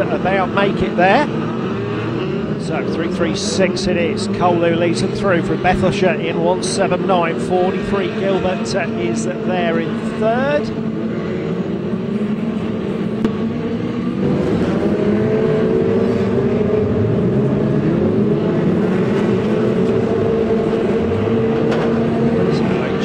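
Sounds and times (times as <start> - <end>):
stock car engines racing: 0.0 - 23.0.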